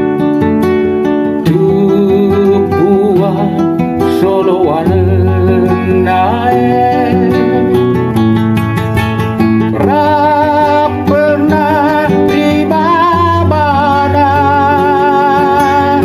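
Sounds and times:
instrumental accompaniment: 0.0 - 16.0
person singing: 1.3 - 8.3, 9.7 - 16.0.

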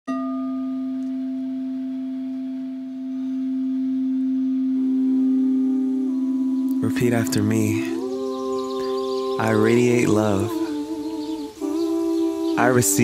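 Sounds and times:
higher tone: 0.1 - 13.0
sustained ringing tone: 0.1 - 13.0.

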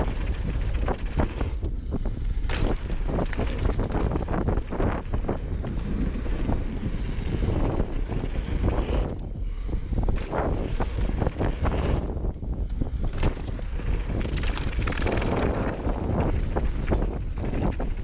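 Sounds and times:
rumble of bike tyres on dirt: 0.0 - 18.0
wind buffeting microphone: 0.0 - 18.0
bike frame clattering: 2.2 - 5.1.

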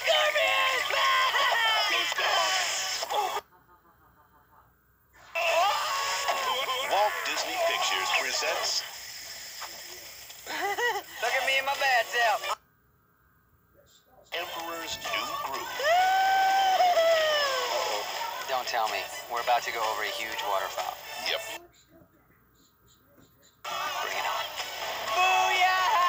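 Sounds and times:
cartoon character voices: 0.0 - 3.5, 5.3 - 8.6, 14.3 - 22.0
character laughing: 10.5 - 11.2
background music: 14.6 - 21.6, 23.7 - 26.0.

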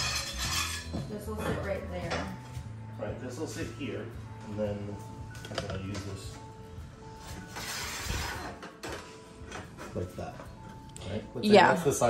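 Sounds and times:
metal rail scraping on wood: 0.0 - 1.0, 7.4 - 10.0.

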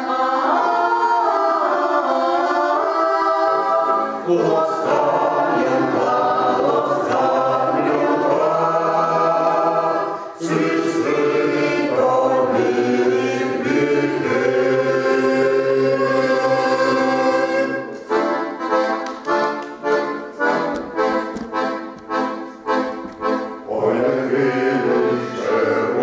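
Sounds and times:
mixed choir singing in harmony: 0.0 - 18.1, 23.7 - 26.0.

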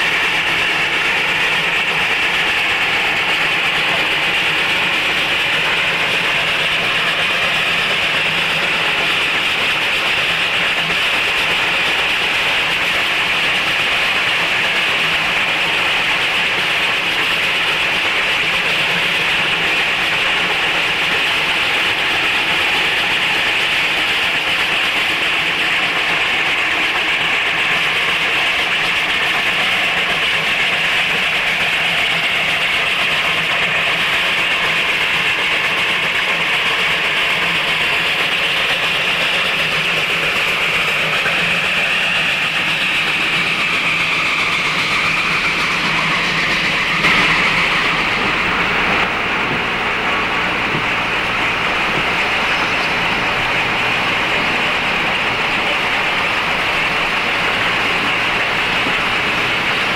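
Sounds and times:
steam train passing: 0.0 - 59.9.

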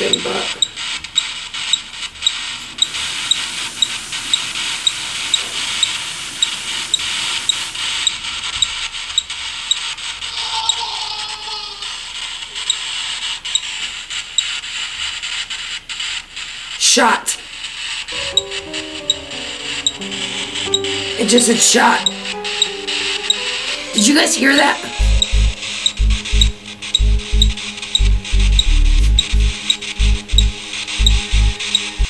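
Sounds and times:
faint electronic ticks: 0.0 - 9.9, 12.6 - 13.8, 25.0 - 32.0
sink tap running: 2.2 - 8.7.

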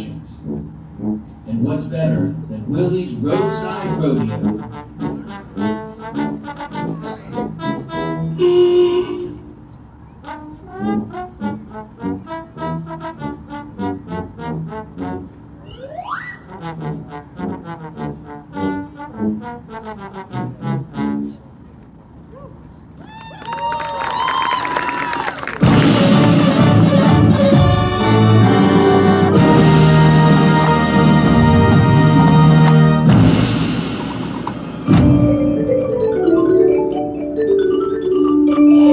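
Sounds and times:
marching band playing: 0.0 - 9.6, 10.2 - 21.4, 25.4 - 38.9.

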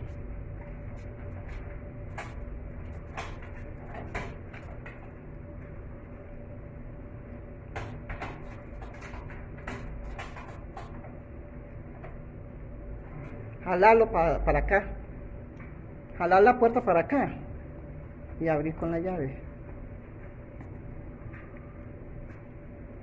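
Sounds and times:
low background hum: 0.0 - 23.0.

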